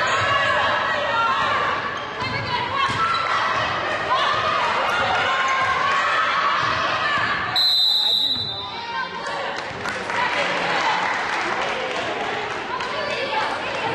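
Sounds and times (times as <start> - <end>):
basketball court noise: 0.0 - 13.9
referee's whistle: 7.6 - 8.8.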